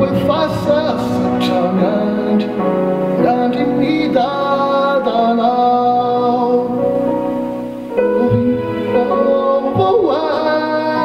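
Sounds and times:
man singing into a microphone: 0.0 - 7.3, 8.0 - 11.0
electronic keyboard: 0.0 - 11.0.

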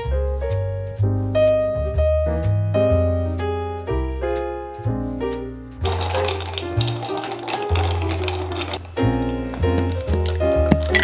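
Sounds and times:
background music with bass line: 0.0 - 5.8
flour shaken through plastic sieve: 5.8 - 10.9.

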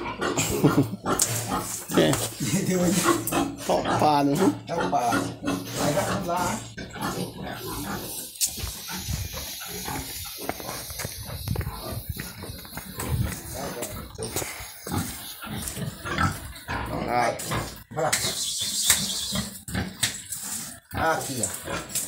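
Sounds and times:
pigs grunting: 0.0 - 22.0.

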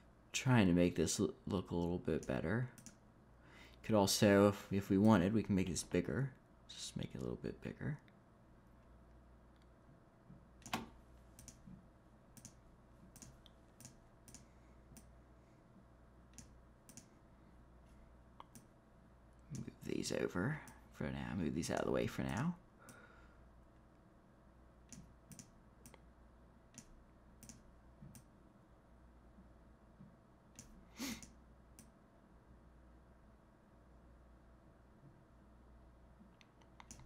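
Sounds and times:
low steady hum: 0.0 - 37.0
computer mouse clicks: 2.2 - 3.0, 10.6 - 11.7, 12.4 - 15.1, 16.3 - 17.1, 24.9 - 26.0, 26.7 - 28.3, 30.6 - 32.0, 36.4 - 37.0.

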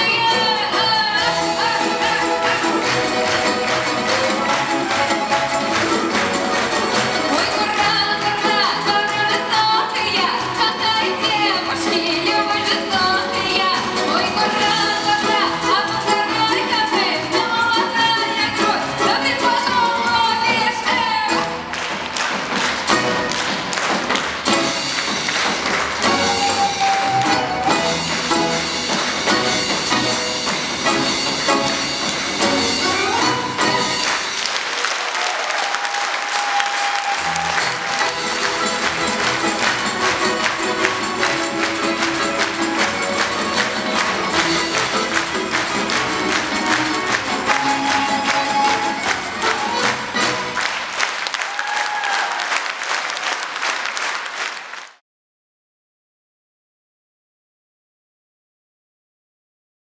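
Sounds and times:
folk instrument ensemble playing: 0.0 - 35.0, 36.6 - 51.1.

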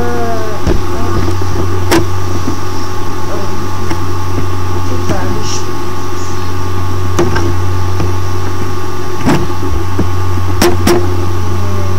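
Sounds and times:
loud low hum: 0.0 - 11.9
sharp knocks: 7.2 - 11.1.

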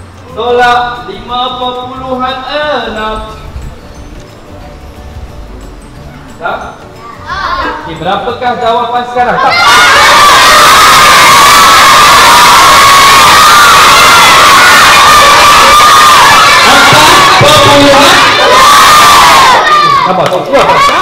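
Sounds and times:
crowd of children shouting: 9.4 - 21.0.

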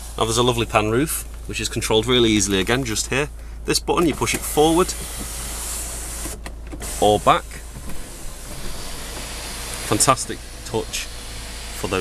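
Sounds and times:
sunroof motor whirring: 4.3 - 12.0.

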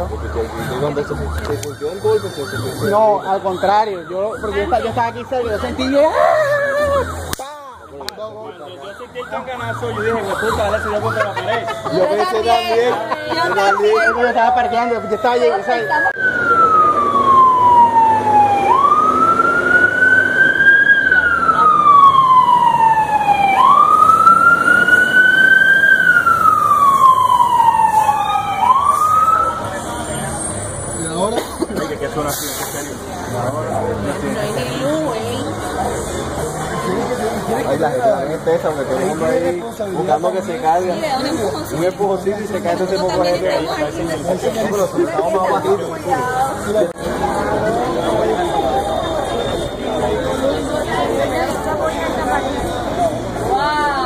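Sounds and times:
voices: 0.0 - 54.0
siren yelping: 0.8 - 29.9.

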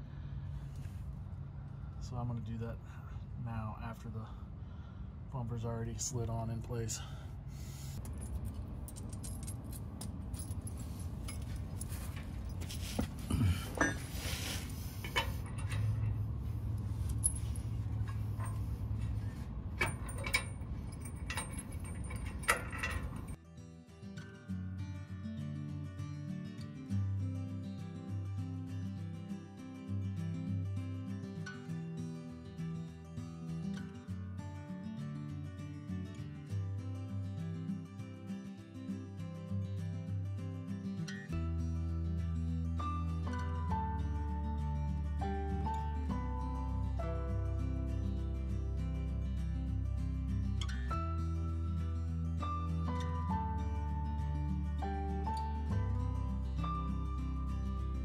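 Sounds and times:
metal clinks and knocks: 8.0 - 23.4
acoustic guitar music: 10.1 - 21.4, 23.2 - 58.0.

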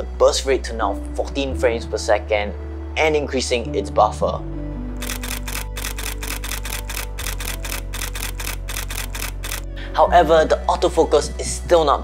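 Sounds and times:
camera shutter burst: 5.0 - 9.6.

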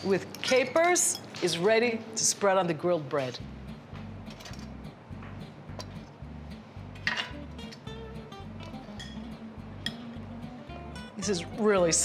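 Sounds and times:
utensils clinking on dishes: 0.0 - 1.9, 7.0 - 7.8.

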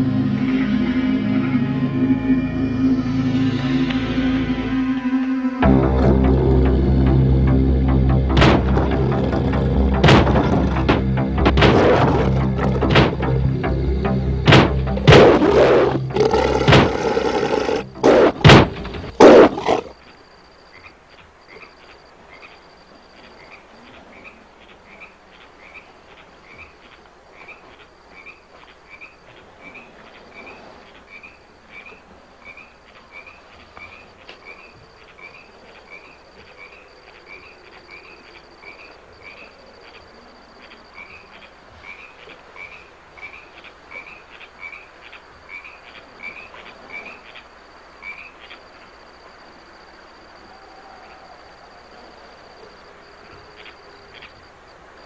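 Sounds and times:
frogs chirping: 0.0 - 55.0
insect trill: 0.0 - 55.0.

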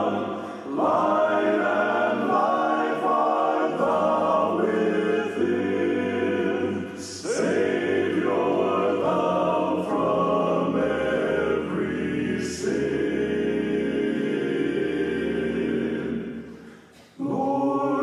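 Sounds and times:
male quartet singing in harmony: 0.0 - 18.0.

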